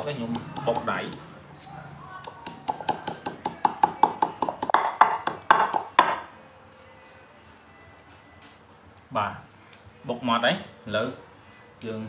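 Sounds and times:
wooden pestle pounding in mortar: 0.1s - 1.2s, 2.2s - 6.2s.

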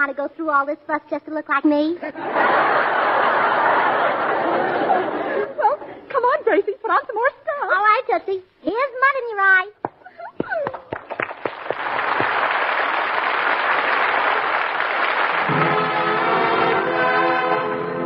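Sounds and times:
audience laughter: 2.0s - 6.1s
applause: 10.6s - 16.5s
music with held chords: 15.5s - 18.0s.

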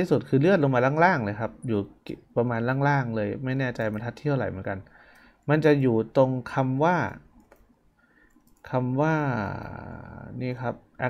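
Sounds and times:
person speaking: 0.0s - 7.4s, 8.5s - 11.0s.

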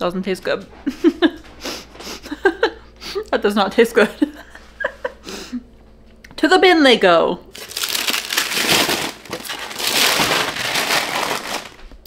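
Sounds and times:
cookies scraped off paper: 7.6s - 11.9s.

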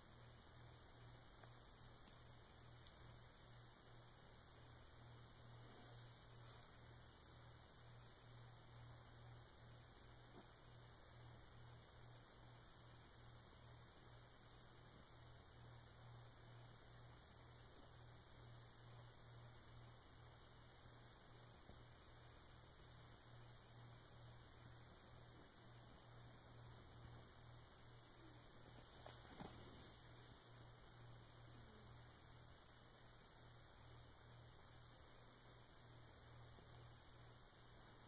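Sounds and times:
faint low hum: 0.0s - 38.0s
soft hiss: 0.0s - 38.0s.

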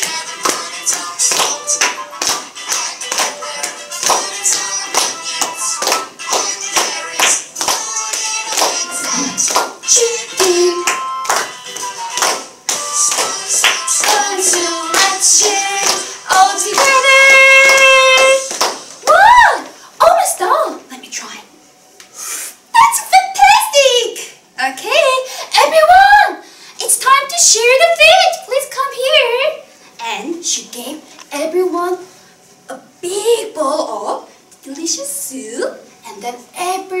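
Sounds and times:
person singing: 0.0s - 18.5s
steady rhythmic beat: 0.0s - 19.0s.

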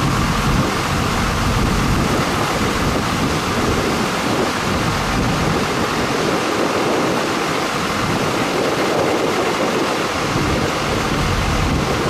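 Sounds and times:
wind blowing on microphone: 0.0s - 12.0s.

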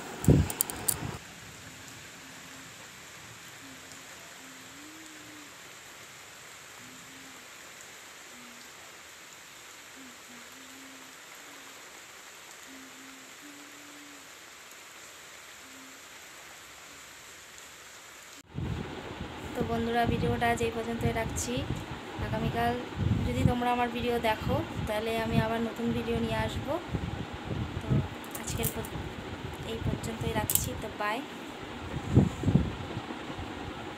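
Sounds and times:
steady rain falling: 0.0s - 33.9s.

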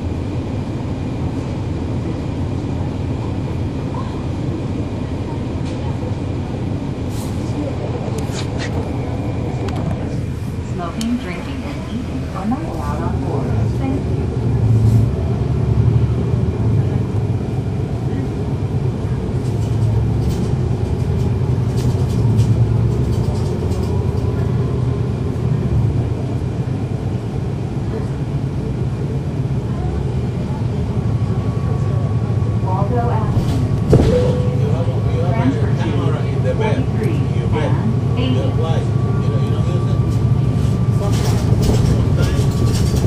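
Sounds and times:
bus diesel engine drone: 0.0s - 43.0s.

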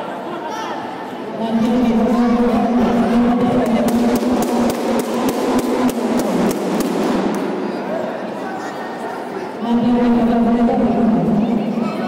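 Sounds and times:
busy hall hum: 0.0s - 12.0s
sharp rhythmic knocks: 3.6s - 7.6s.

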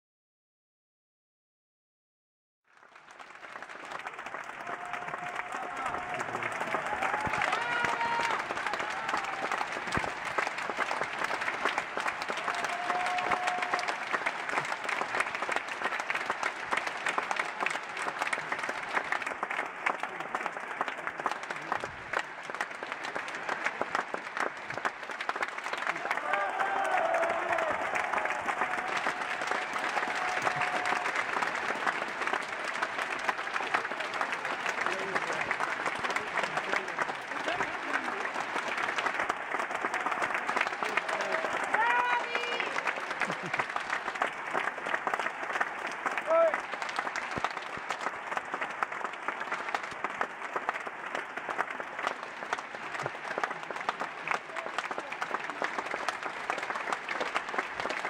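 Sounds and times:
audience applauding: 2.7s - 58.0s.

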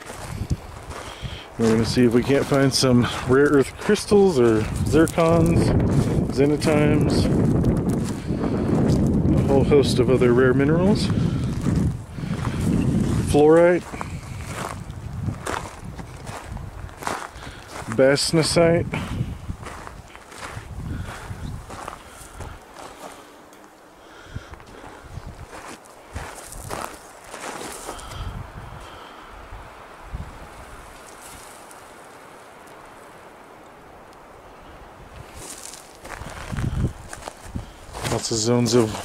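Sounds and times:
footsteps crunching on gravel: 0.0s - 23.8s, 24.4s - 28.9s, 31.0s - 31.8s, 35.2s - 39.0s.

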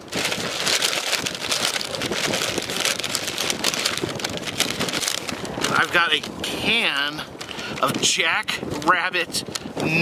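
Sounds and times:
paper bag rustling and crinkling: 0.0s - 9.7s.

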